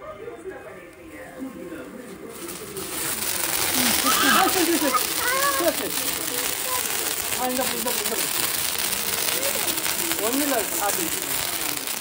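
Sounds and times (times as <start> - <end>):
firework fizzing hiss: 2.1 - 12.0.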